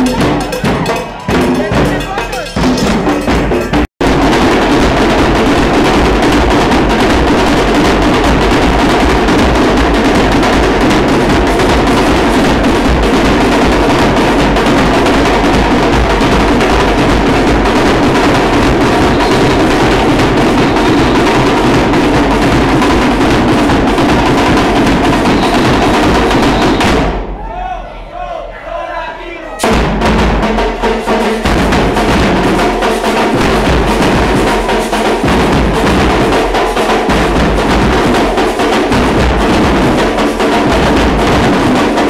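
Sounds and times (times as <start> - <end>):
loud live band music: 0.0 - 27.4, 29.4 - 42.0
drums and percussion: 0.0 - 28.8, 29.4 - 42.0.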